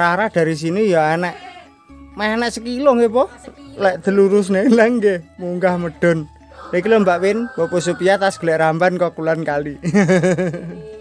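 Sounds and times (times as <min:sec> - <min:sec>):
goats bleating: 0:01.2 - 0:01.7.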